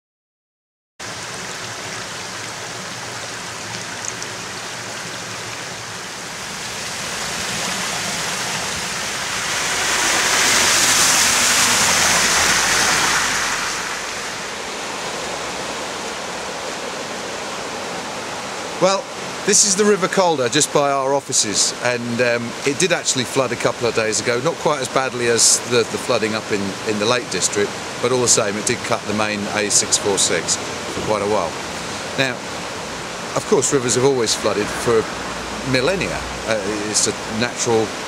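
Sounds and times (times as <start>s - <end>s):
river rushing: 1.0s - 38.0s.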